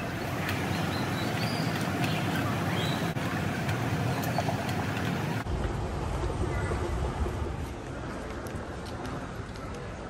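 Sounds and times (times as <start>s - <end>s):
low rumble: 5.4s - 10.0s.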